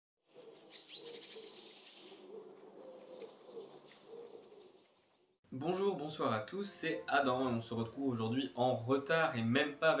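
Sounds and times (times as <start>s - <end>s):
bird cooing: 0.4s - 4.8s
birds chirping: 0.4s - 8.4s.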